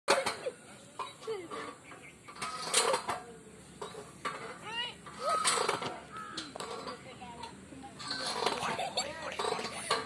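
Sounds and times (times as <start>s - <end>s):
swing chains clinking: 0.1s - 10.0s.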